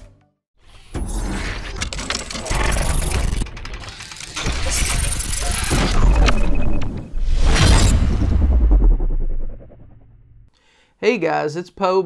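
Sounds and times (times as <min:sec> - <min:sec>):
deep bass hits: 0:07.2 - 0:10.5.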